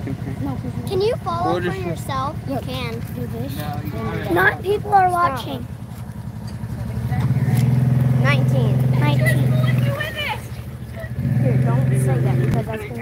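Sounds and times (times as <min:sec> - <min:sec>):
engine revving and idling: 0:00.0 - 0:13.0.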